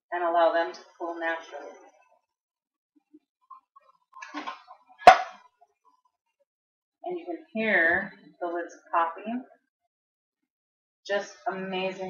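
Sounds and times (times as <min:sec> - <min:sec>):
jar lid popping: 0:04.2 - 0:05.4.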